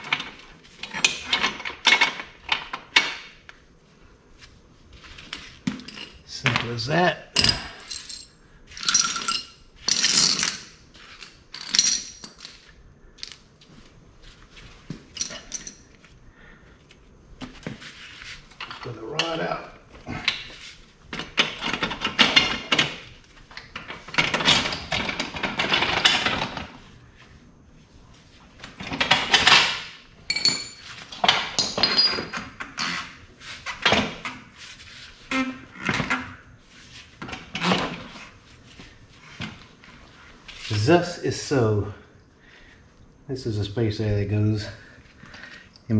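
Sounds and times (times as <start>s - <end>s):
metal parts knocking and clinking: 0.0s - 3.3s, 7.4s - 13.4s, 15.1s - 15.9s, 21.1s - 26.7s, 28.8s - 32.6s
metal parts clinking: 5.3s - 13.4s, 15.1s - 16.0s, 29.0s - 32.4s.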